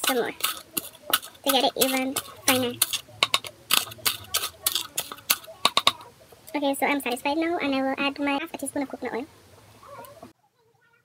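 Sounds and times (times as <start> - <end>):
spoon scraping container: 0.0 - 7.3.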